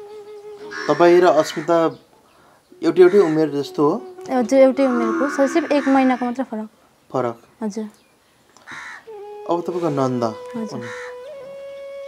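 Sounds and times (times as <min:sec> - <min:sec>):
crow cawing: 0:00.7 - 0:03.6, 0:04.7 - 0:06.7, 0:08.6 - 0:09.2, 0:10.8 - 0:11.3.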